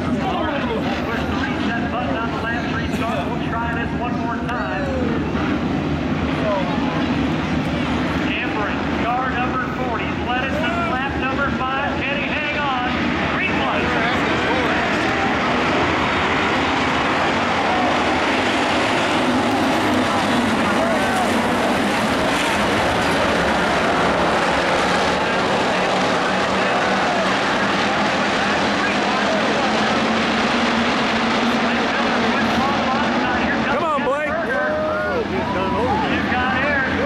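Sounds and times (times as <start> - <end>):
race car engines droning: 0.0 - 37.0.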